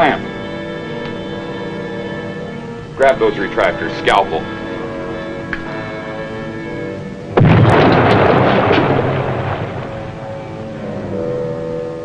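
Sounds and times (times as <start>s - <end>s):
background music: 0.0s - 12.0s
long rumble: 7.1s - 12.0s
underwater explosion blast: 7.4s - 10.8s.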